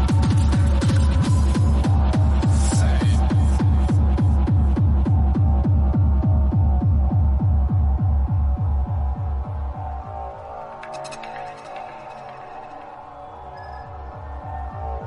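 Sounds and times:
hi-hats: 0.0 - 13.3.

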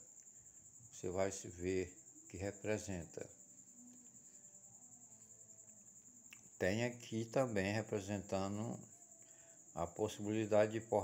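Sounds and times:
cricket trilling: 0.0 - 11.0.

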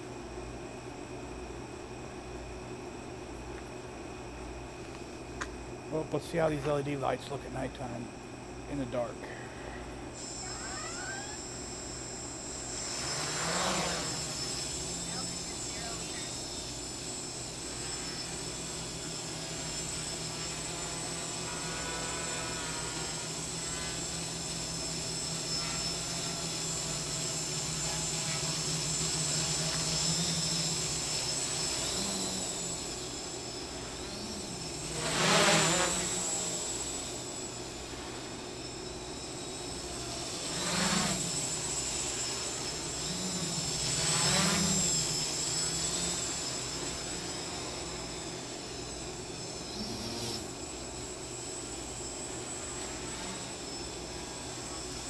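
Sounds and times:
quadcopter motors buzzing: 0.0 - 55.0.

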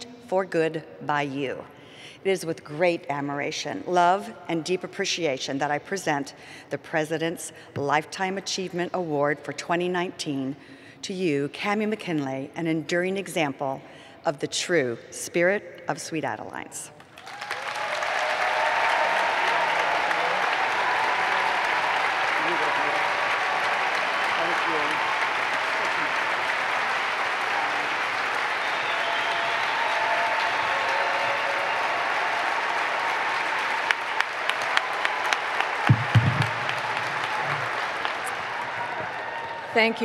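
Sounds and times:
audience applauding: 17.0 - 40.0
low thump: 35.9 - 36.9
sharp knocks: 35.9 - 37.0.

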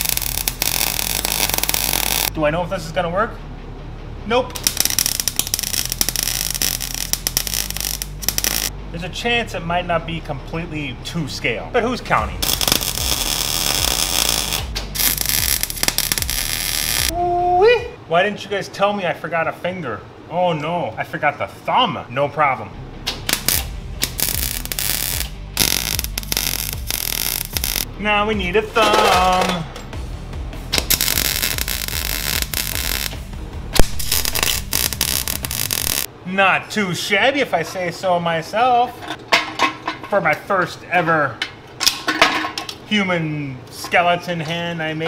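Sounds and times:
welding arc crackling: 0.0 - 2.3, 4.6 - 8.7, 12.3 - 17.1, 23.2 - 27.9, 30.8 - 33.2, 33.8 - 36.1.

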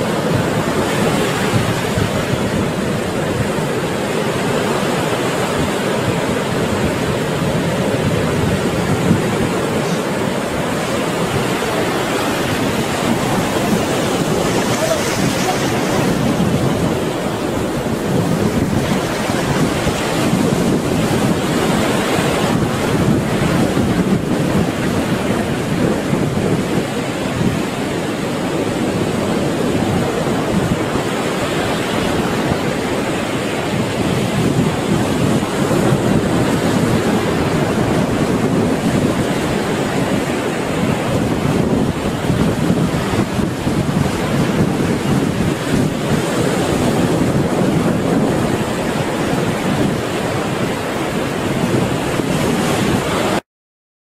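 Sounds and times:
waves breaking: 0.0 - 53.4.

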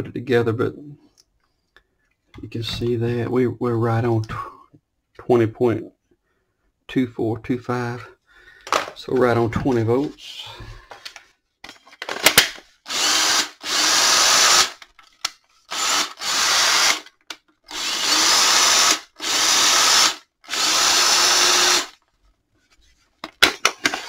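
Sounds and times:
cordless drill motor bursts: 12.9 - 14.8, 15.7 - 17.1, 17.7 - 22.0.

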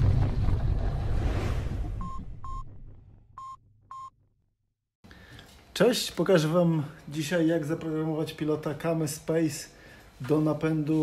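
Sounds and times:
deep boom: 0.0 - 4.1
short electronic beeps: 2.0 - 2.7, 3.4 - 4.2.

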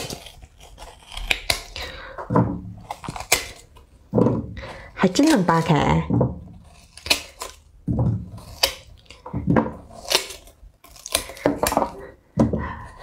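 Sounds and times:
watermelon rind snapping: 0.0 - 1.9, 2.8 - 3.8, 6.6 - 7.7, 8.3 - 9.2, 9.9 - 12.0.

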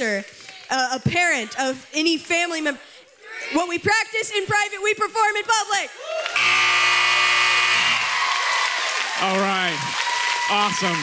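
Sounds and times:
audience applause and cheering: 6.0 - 11.0
loud steady buzzer: 6.4 - 8.4.

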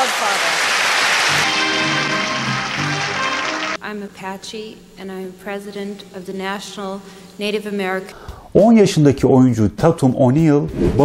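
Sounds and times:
audience applauding: 0.0 - 3.8
music of long held notes: 1.2 - 3.8.

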